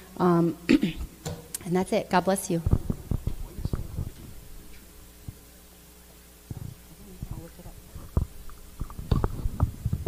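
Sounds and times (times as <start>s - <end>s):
microphone handling noise: 2.6s - 5.4s, 6.5s - 10.0s.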